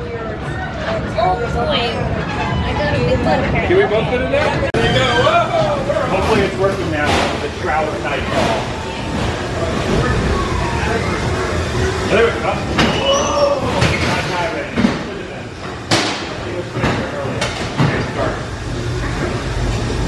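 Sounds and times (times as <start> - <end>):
ride car rumbling on track: 0.0 - 20.0
voices: 0.0 - 20.0
wailing tone: 9.9 - 11.6.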